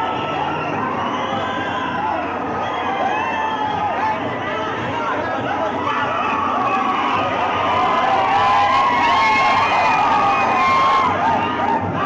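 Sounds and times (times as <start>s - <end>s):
large crowd cheering and shouting: 0.0s - 12.0s.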